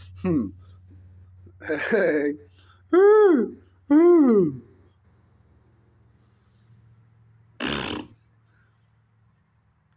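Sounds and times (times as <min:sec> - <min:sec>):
faint low hum: 0:00.0 - 0:09.9
man blowing a raspberry: 0:07.6 - 0:08.4.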